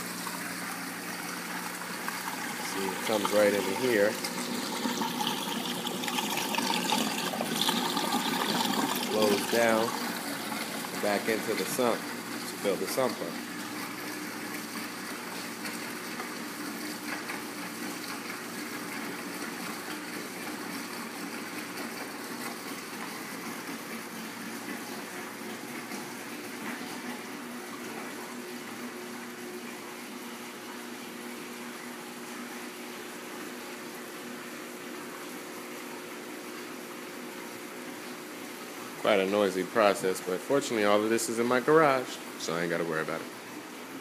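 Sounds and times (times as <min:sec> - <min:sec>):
pump humming: 0:00.0 - 0:44.0
water splashing into a tank: 0:00.0 - 0:44.0.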